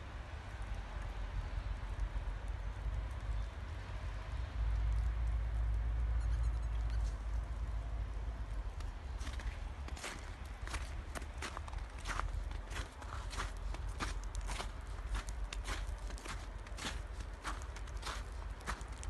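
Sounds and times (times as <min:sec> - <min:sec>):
footsteps crunching on snow: 0:09.2 - 0:19.0.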